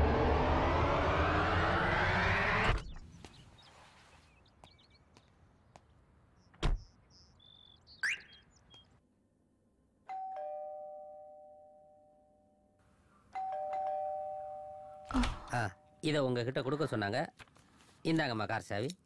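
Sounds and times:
doorbell chime: 10.1s - 12.7s, 13.4s - 15.1s.

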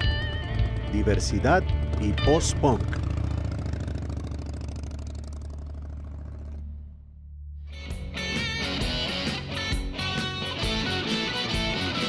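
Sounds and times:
motorcycle engine running: 0.0s - 7.2s.

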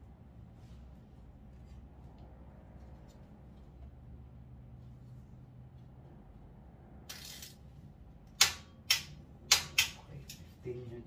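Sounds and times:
sharp metallic clicks: 8.3s - 10.4s.

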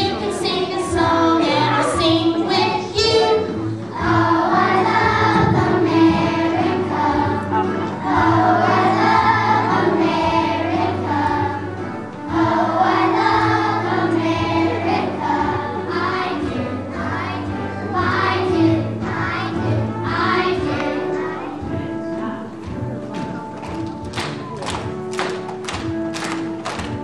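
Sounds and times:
children's choir singing: 0.0s - 22.8s.

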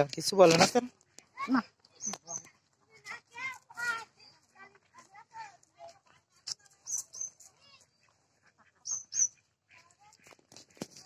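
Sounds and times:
faint outdoor background: 0.0s - 11.0s
bird chirping: 1.8s - 2.6s, 6.4s - 9.8s.

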